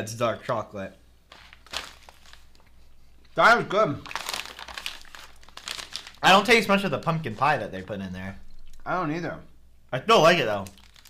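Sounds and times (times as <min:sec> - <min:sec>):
quiet chewing: 0:08.4 - 0:08.9.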